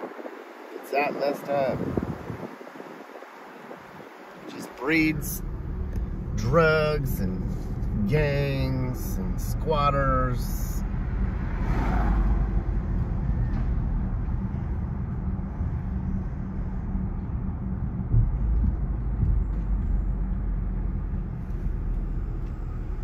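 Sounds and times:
car engine and road rumble: 0:00.0 - 0:23.0.

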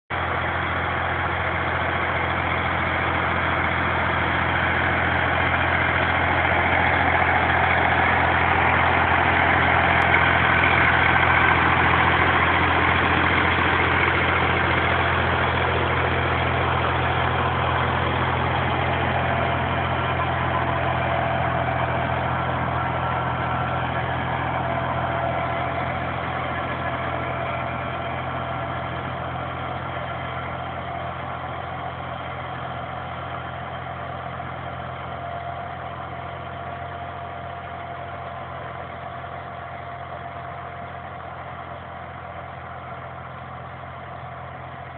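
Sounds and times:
tractor diesel engine running: 0:00.0 - 0:44.9.

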